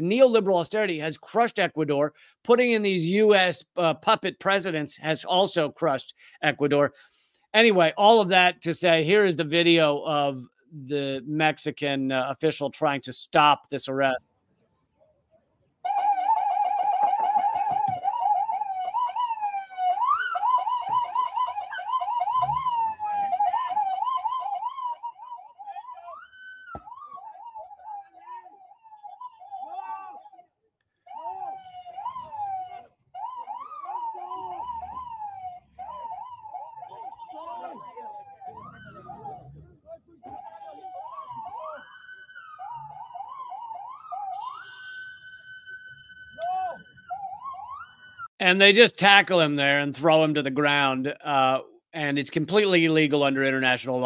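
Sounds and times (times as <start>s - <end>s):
police siren yelping: 15.8s - 48.3s.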